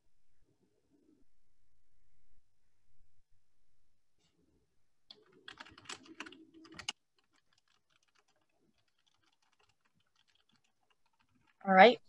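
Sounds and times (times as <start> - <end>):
computer keyboard typing: 5.1 - 11.6.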